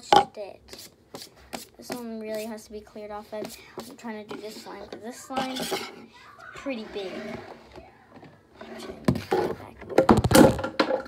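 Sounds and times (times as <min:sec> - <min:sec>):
plastic tubs knocking on wooden desk: 0:09.1 - 0:11.0.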